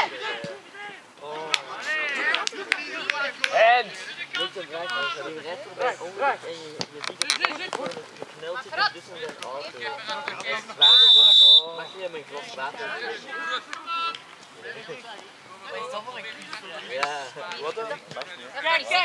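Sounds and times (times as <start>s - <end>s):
voices talking and calling out: 0.0s - 19.0s
referee's whistle blast: 10.8s - 12.0s.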